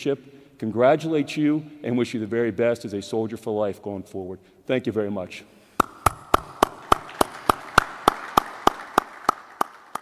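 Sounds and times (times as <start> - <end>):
audience applauding: 5.8 - 10.0
hands clapping near microphone: 5.8 - 10.0.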